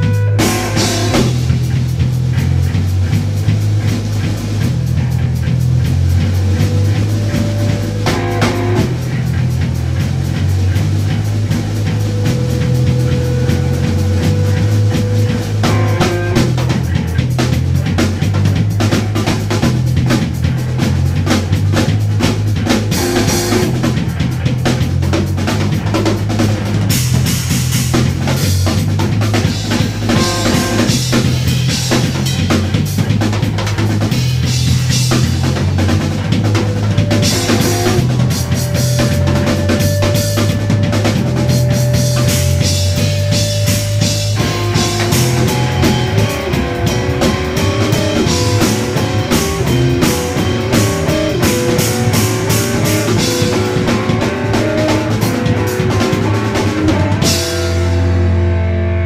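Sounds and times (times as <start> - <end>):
drum kit: 0.0 - 59.0
sustained bass notes: 0.0 - 59.0
held melodic notes: 36.2 - 58.8.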